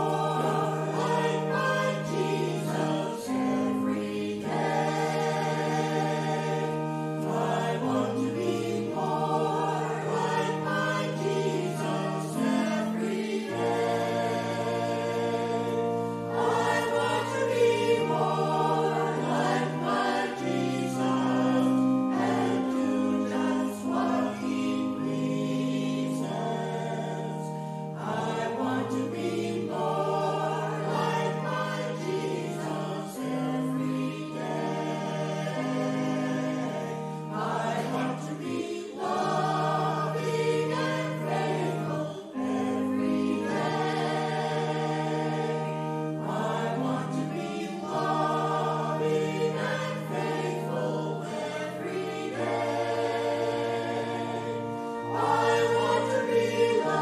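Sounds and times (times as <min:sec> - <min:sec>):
church choir singing: 0:00.0 - 0:57.0
sustained low chords: 0:00.0 - 0:57.0.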